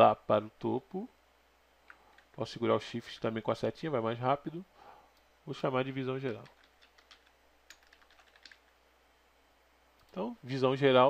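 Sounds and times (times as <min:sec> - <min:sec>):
keyboard typing clicks: 0:06.3 - 0:08.8.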